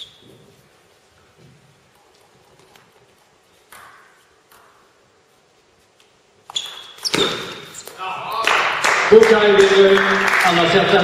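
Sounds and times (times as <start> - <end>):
spectators applauding: 8.3 - 11.0.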